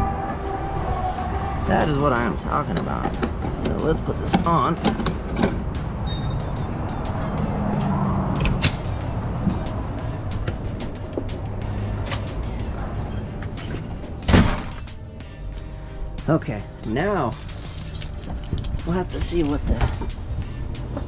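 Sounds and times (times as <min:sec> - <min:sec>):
door slamming shut: 0:14.2 - 0:14.8.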